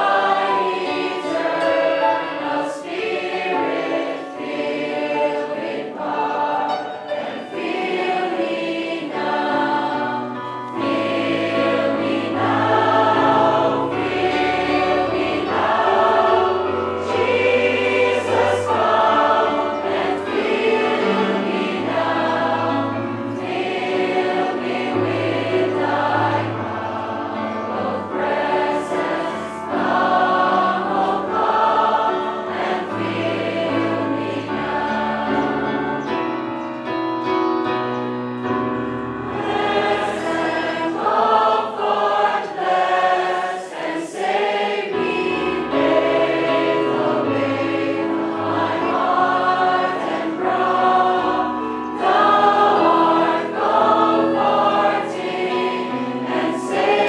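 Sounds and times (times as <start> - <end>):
congregation singing: 0.0 - 57.0.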